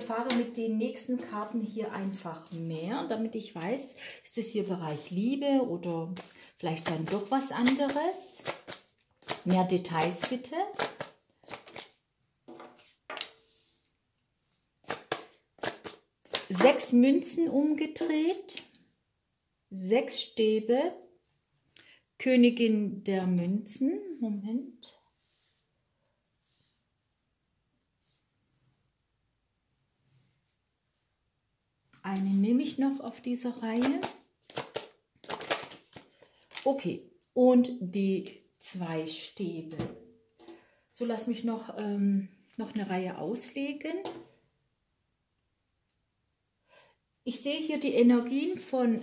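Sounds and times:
cards rustling: 6.1 - 12.0, 33.7 - 36.8
cards snapping: 7.0 - 9.4, 10.0 - 11.9, 14.9 - 16.5, 33.8 - 36.6.

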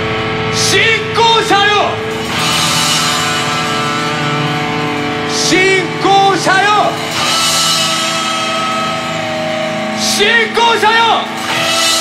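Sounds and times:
rock band sustained chord: 0.0 - 12.0.

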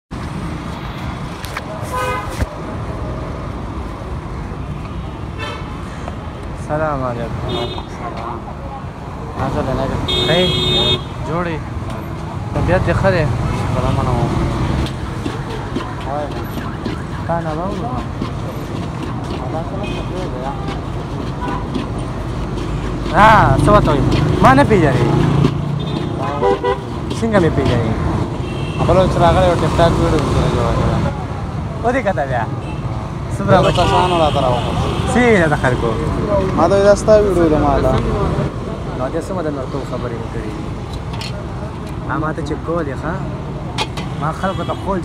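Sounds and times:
street traffic noise: 0.1 - 45.0
vehicle horn toots: 1.9 - 2.4, 5.4 - 5.7, 7.5 - 8.0, 10.1 - 11.2, 25.8 - 26.9, 28.4 - 29.0
people talking indistinctly: 5.7 - 45.0.

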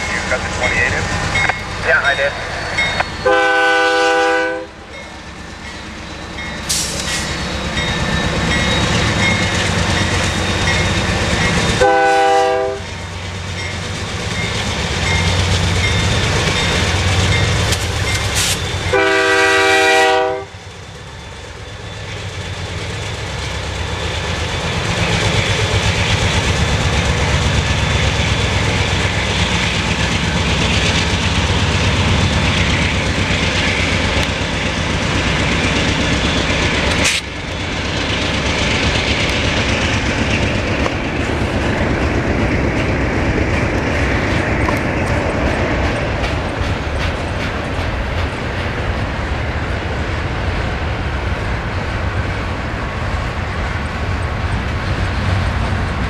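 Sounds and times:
diesel locomotive engines under load: 0.0 - 56.0
locomotive air horn blasts: 3.2 - 4.8, 11.8 - 12.9, 18.9 - 20.6
train wheels clacking over rail joints: 13.5 - 19.2, 22.0 - 49.3.

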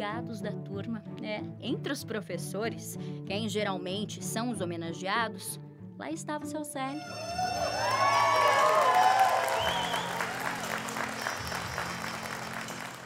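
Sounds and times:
soft background music: 0.0 - 13.0
people shouting and whooping: 7.0 - 10.8
audience applauding: 7.2 - 13.0.

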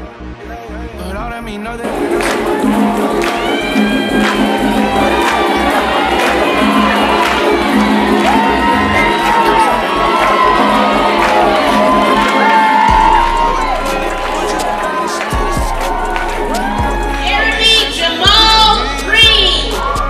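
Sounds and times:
hip-hop track over sound system: 0.0 - 20.0
crowd cheering and whooping: 1.8 - 20.0.

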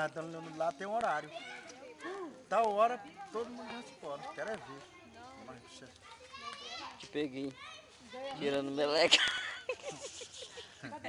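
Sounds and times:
children playing and calling out: 1.0 - 8.8
high child's voice: 6.0 - 7.0.

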